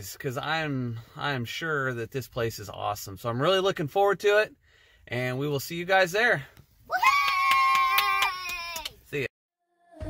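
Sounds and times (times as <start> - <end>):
child squealing: 6.9 - 8.9.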